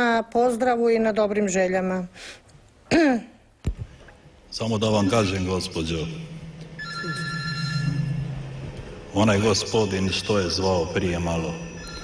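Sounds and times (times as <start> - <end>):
telephone line beep: 6.8 - 8.5, 11.7 - 12.0.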